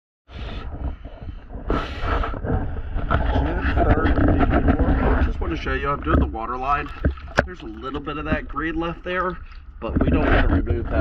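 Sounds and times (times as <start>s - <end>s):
water sloshing: 0.5s - 11.0s
rushing water splashes: 3.2s - 11.0s
man talking: 5.2s - 11.0s.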